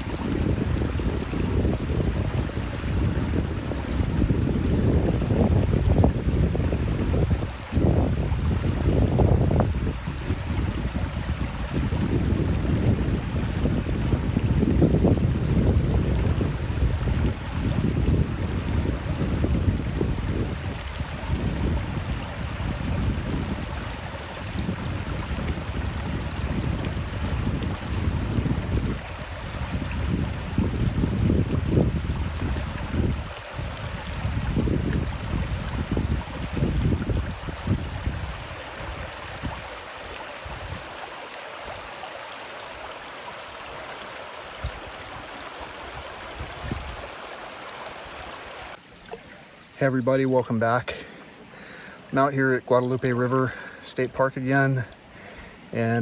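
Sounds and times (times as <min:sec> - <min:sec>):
wind rumble on microphone: 0:00.0 - 0:41.1, 0:44.5 - 0:48.8
river water rippling over rocks: 0:00.0 - 0:56.0.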